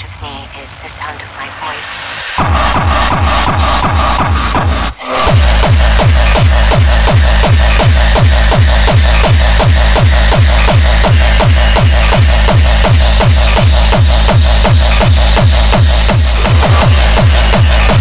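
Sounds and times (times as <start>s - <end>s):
hardcore techno music: 0.0s - 18.0s
heavy kick drum: 2.4s - 18.0s.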